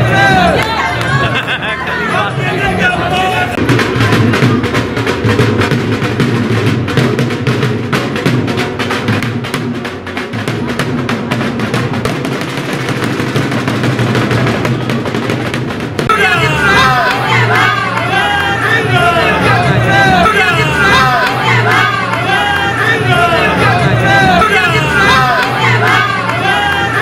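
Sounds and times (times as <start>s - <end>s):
crowd shouting: 0.0s - 4.6s, 16.0s - 27.0s
rapid drum roll: 3.5s - 22.2s.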